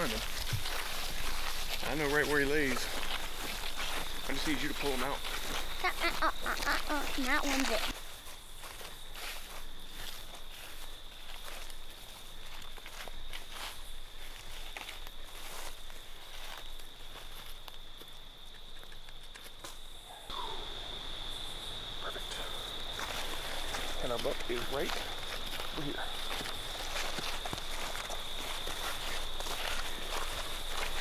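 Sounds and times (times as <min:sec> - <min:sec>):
footsteps crunching through leaves: 0:00.0 - 0:18.2, 0:22.5 - 0:31.0
high-pitched insect trill: 0:00.0 - 0:31.0.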